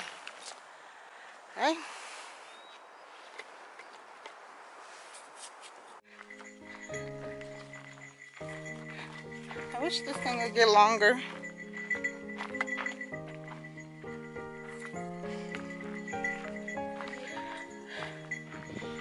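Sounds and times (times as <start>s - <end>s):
background music with sustained notes: 6.1s - 19.0s.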